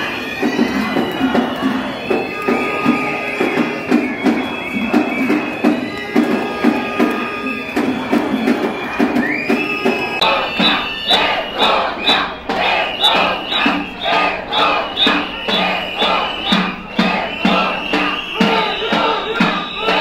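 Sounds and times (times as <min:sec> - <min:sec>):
crowd chanting: 0:00.0 - 0:20.0
hands clapping: 0:00.9 - 0:08.6.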